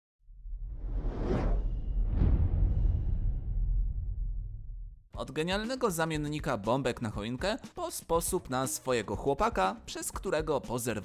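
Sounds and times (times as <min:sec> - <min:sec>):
deep low rumble: 0:00.3 - 0:05.1
rising whoosh: 0:00.3 - 0:05.1.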